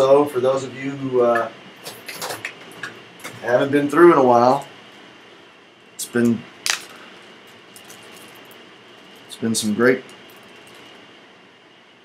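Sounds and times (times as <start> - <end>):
steady hiss: 3.5 - 11.6.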